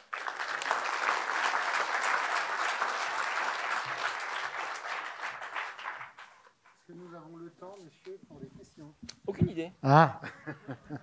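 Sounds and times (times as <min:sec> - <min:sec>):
audience applauding: 0:00.0 - 0:06.7.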